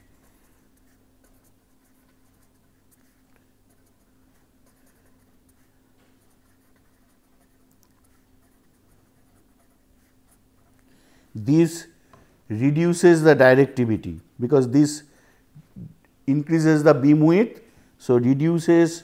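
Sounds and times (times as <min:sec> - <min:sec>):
pen scratching on paper: 0:00.0 - 0:10.8
low steady hum: 0:00.0 - 0:19.0.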